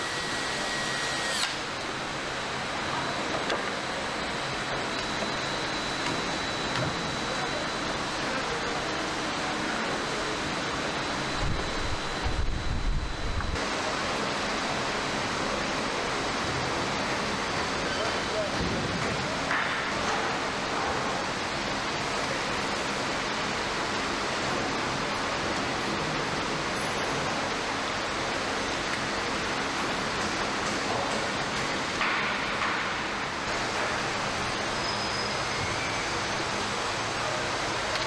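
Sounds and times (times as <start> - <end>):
hiss-like factory noise: 0.0 - 38.0.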